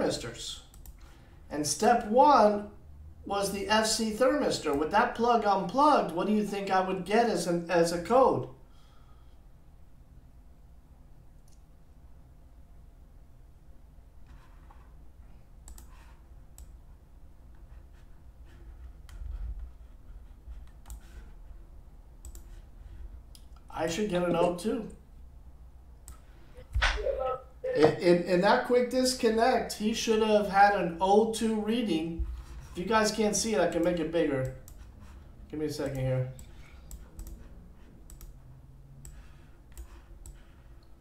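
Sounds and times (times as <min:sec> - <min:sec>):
computer mouse clicks: 0:00.7 - 0:01.1, 0:15.6 - 0:16.8, 0:20.5 - 0:21.3, 0:22.2 - 0:22.6, 0:33.8 - 0:34.9, 0:35.8 - 0:38.4, 0:39.0 - 0:40.9.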